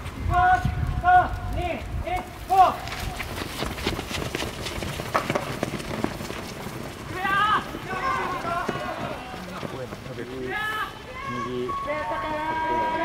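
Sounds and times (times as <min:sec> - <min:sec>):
people running on dirt: 0:00.0 - 0:13.0
voices shouting: 0:06.8 - 0:13.0.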